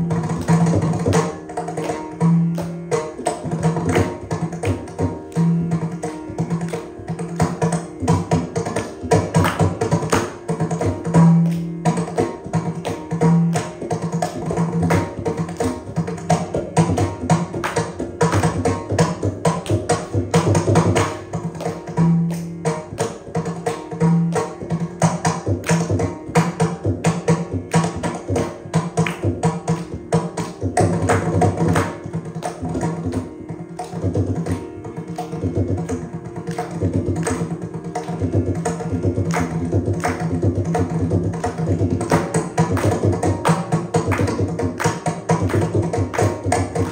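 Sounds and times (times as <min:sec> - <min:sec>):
hand drum playing fast strokes: 0:00.0 - 0:46.9.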